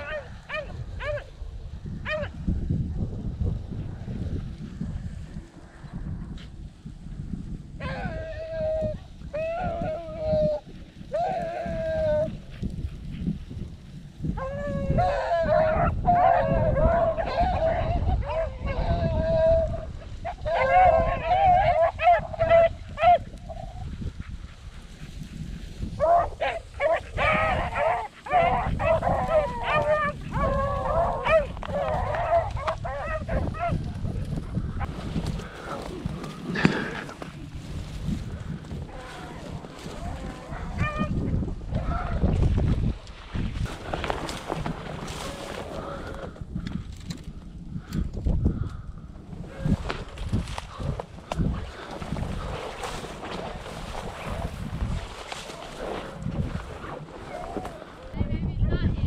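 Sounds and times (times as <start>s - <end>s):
wind buffeting microphone: 0.0s - 59.0s
dogs baying: 14.4s - 24.4s, 26.0s - 33.8s, 38.8s - 41.2s.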